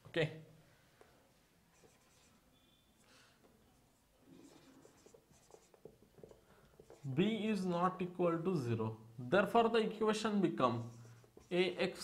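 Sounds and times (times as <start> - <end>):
marker pen writing on whiteboard: 1.7 - 3.0, 3.7 - 7.7, 10.6 - 12.0.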